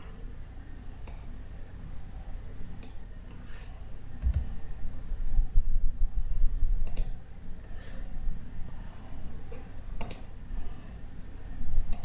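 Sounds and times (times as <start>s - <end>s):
computer mouse button clicking: 10.0s - 10.3s.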